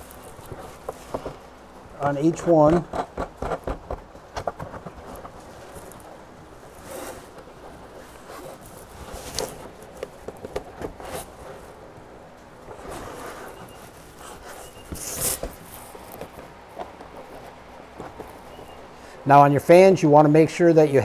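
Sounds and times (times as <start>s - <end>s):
rustling scrape: 0.0s - 1.5s, 4.7s - 10.0s, 10.8s - 11.8s, 12.7s - 18.8s.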